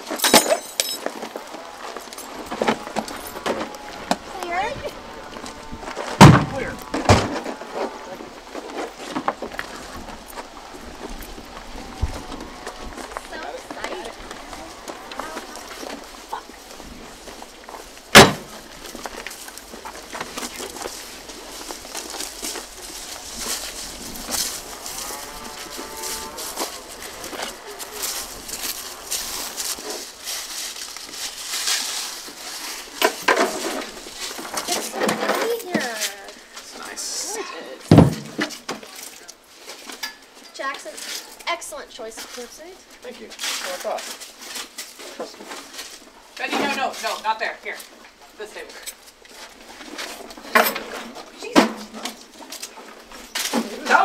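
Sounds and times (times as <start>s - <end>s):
sharp knocks: 6.2s - 7.4s, 18.1s - 18.6s.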